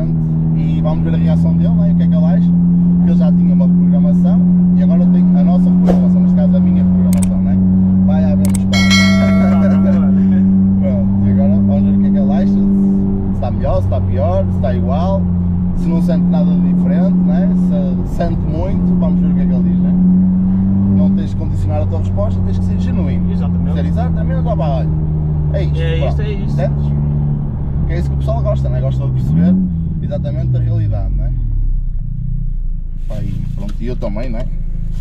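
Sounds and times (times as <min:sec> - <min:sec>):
car engine droning in cabin: 0:00.0 - 0:35.0
bell-like ringing tone: 0:08.6 - 0:10.7.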